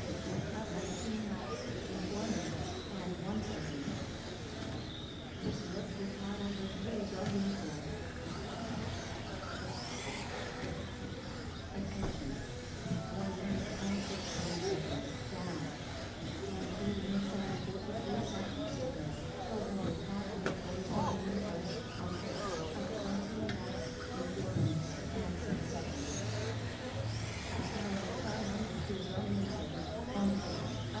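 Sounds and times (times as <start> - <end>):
indistinct talking: 0.0 - 31.0
rc buggies racing: 0.0 - 31.0.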